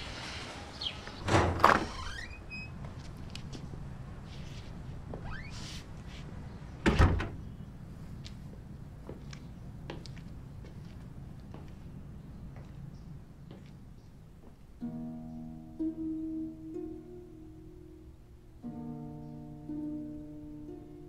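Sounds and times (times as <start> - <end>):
door banging shut: 1.2 - 2.5, 6.8 - 7.4.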